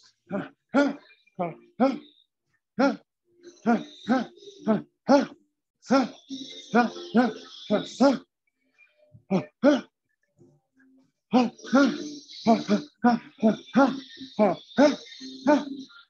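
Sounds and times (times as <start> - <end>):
man grunting: 0.3 - 2.0, 2.8 - 3.0, 3.6 - 6.2, 9.3 - 9.9, 11.3 - 15.8.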